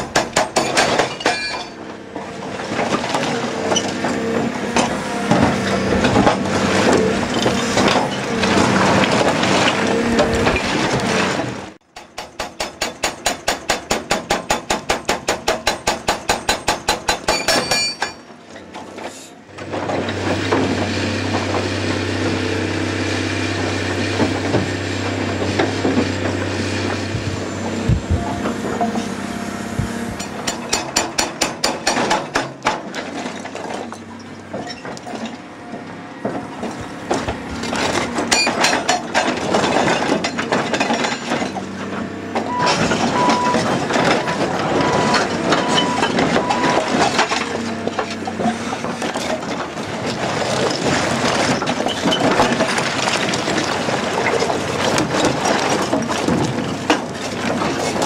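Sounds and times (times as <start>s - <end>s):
hydraulic hammer breaking rock: 0.0s - 1.8s, 4.8s - 18.3s, 30.2s - 35.1s
excavator engine running: 1.7s - 11.9s, 18.4s - 58.0s.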